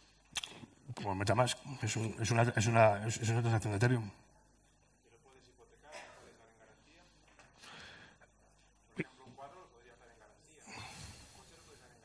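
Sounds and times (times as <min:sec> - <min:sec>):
man's soft breath intake: 0:10.6 - 0:12.0.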